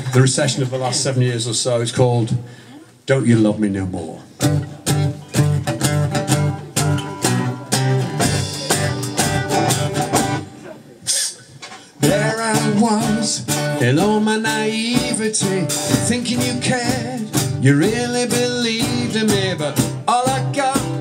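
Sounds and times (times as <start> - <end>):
acoustic guitar strumming: 4.4 - 10.7, 11.8 - 21.0
man singing: 12.0 - 21.0.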